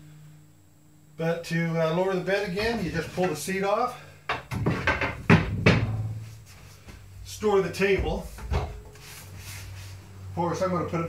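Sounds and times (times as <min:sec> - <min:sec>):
sharp wooden knocks: 0:04.3 - 0:06.2.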